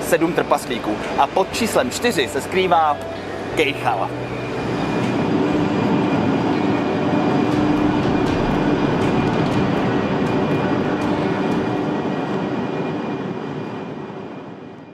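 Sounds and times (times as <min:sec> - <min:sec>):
train rumbling: 0:00.0 - 0:14.9.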